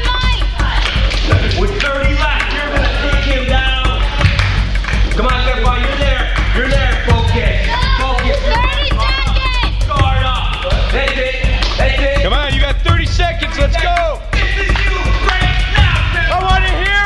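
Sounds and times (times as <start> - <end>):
music with steady beat: 0.0 - 17.0.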